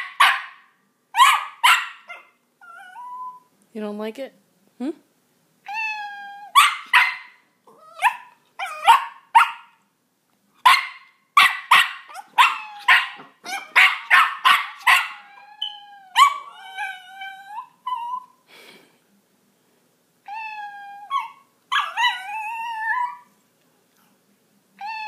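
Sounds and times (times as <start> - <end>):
dog barking sharply: 0.0 - 2.2, 6.6 - 7.4, 8.0 - 9.7, 10.7 - 15.1
dog wavering cry: 1.2 - 3.5, 5.6 - 9.6, 11.4 - 18.4, 20.2 - 23.3, 24.8 - 25.0.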